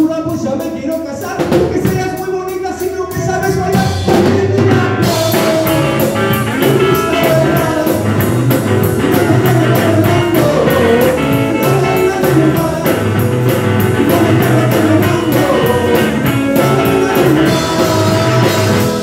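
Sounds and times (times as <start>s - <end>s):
drum kit: 0.0s - 19.0s
person singing: 0.0s - 19.0s
electric guitar: 3.2s - 19.0s.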